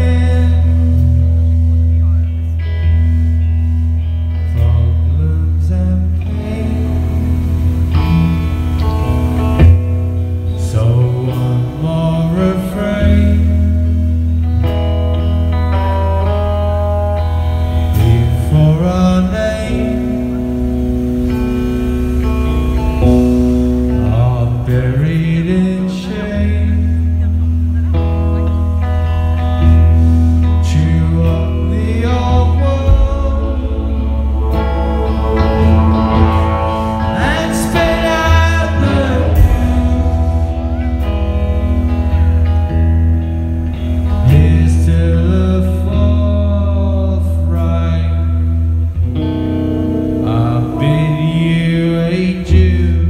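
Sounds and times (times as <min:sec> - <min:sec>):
person singing: 0:00.0 - 0:03.0, 0:04.0 - 0:42.8, 0:43.7 - 0:53.0
electric guitar chords: 0:00.0 - 0:53.0
heavy bass: 0:00.0 - 0:53.0
rock band playing slow song: 0:00.0 - 0:53.0.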